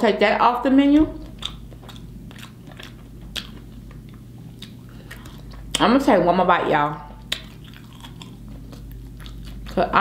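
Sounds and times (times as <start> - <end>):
person chewing: 1.2 - 5.8, 7.1 - 10.0
wet mouth clicks: 1.2 - 5.8.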